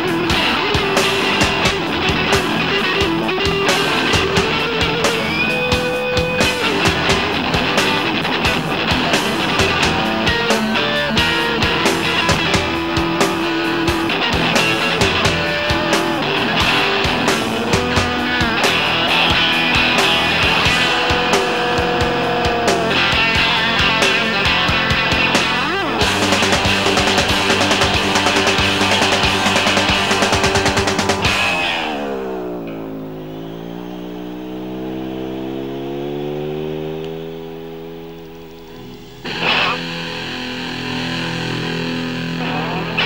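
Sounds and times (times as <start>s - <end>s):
steady drum beat: 0.0s - 32.6s
rock band held note: 0.0s - 33.7s, 38.6s - 43.0s
electric guitar pitch slide: 0.0s - 43.0s.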